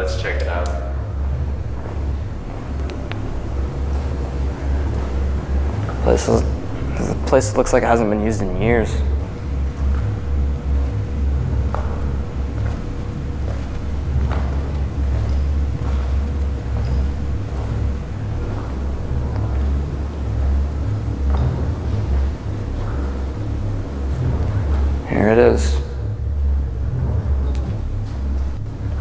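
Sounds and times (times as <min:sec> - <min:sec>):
loud low rumble: 0:00.0 - 0:29.0.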